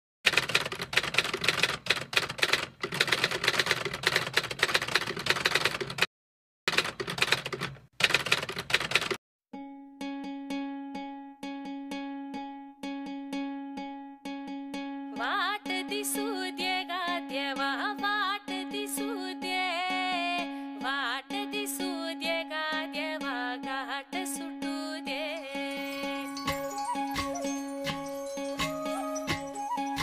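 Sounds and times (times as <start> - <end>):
rapid typing clicks: 0.3 - 6.1, 6.7 - 9.2
plucked string instrument: 9.6 - 30.0
person singing: 15.2 - 30.0.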